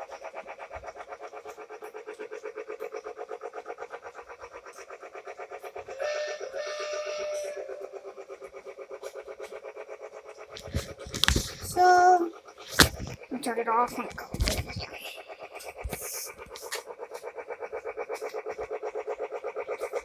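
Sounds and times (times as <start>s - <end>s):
toy train clattering on track: 0.0s - 20.0s.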